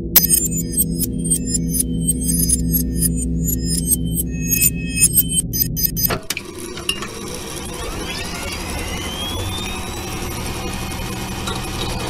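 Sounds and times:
high-pitched computer bleeps: 0.0s - 6.2s
low synth drone: 0.0s - 11.5s.

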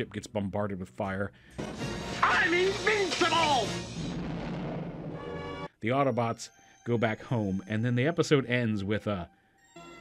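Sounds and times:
cartoon explosion: 1.7s - 5.4s.

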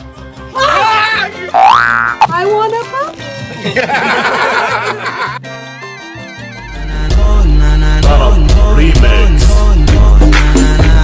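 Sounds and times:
background music: 0.0s - 11.0s
burst of laughter: 3.5s - 5.4s.

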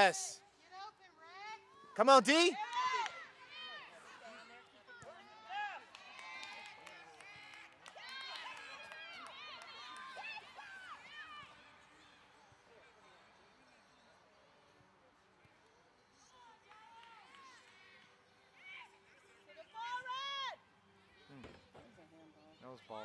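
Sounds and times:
faint outdoor background: 0.0s - 23.0s.

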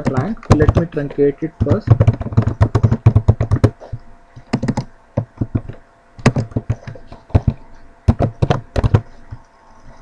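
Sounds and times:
typing on a keyboard: 0.0s - 3.8s, 4.5s - 9.4s.

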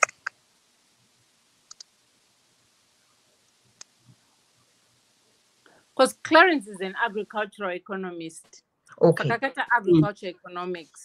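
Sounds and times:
small clicks: 1.7s - 1.9s.

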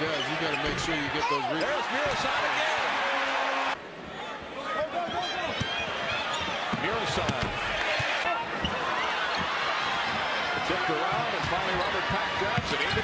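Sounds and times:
sneakers squeaking: 0.1s - 2.2s, 5.5s - 6.8s, 7.9s - 10.6s.

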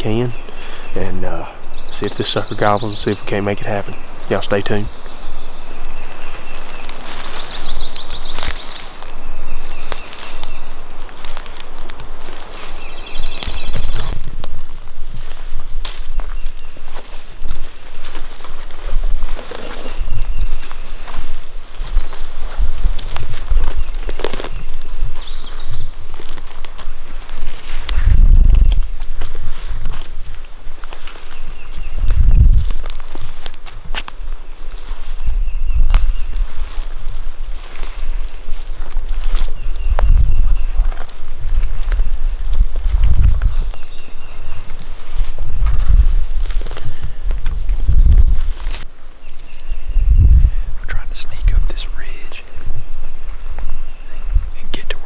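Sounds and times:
footsteps in leaf litter: 2.6s - 49.9s.

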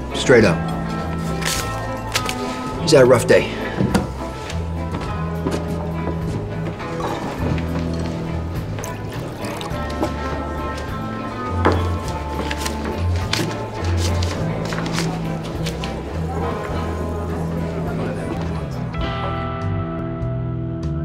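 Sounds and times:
bar ambience: 0.0s - 19.1s
guitar-based film score: 0.0s - 21.0s
low bass line: 17.1s - 21.0s.

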